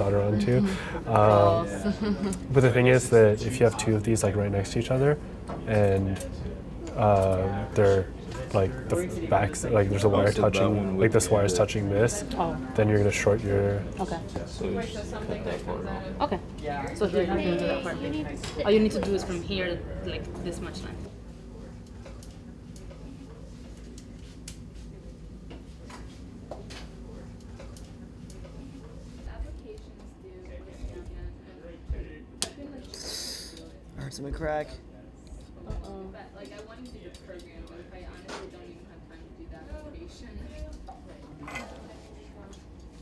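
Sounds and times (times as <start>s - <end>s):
low room hum: 0.0s - 43.0s
indistinct chatter of voices: 26.7s - 43.0s.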